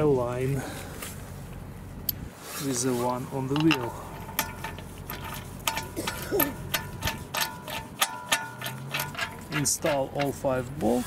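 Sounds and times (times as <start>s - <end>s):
bolt turning with metallic clicks: 3.5s - 10.4s.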